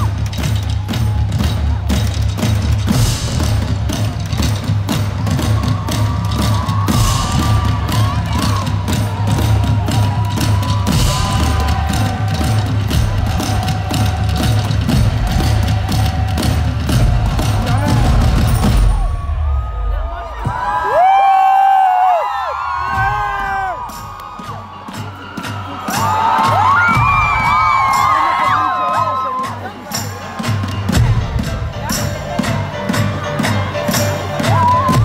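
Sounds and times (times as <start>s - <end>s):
drums pounded hard: 0.0s - 21.2s, 22.6s - 35.0s
crowd cheering and screaming: 0.0s - 32.1s, 33.0s - 35.0s.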